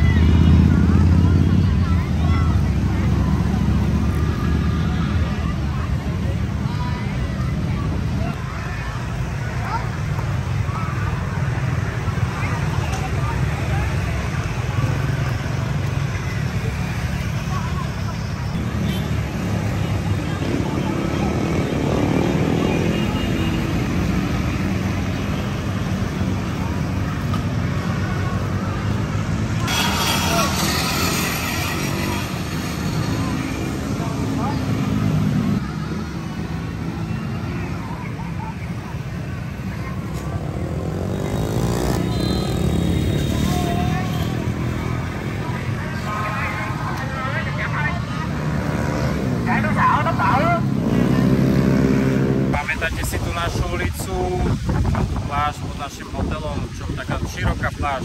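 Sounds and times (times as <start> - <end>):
motor scooters passing: 0.0 - 54.8
cars passing: 0.0 - 58.0
people's voices: 0.0 - 58.0.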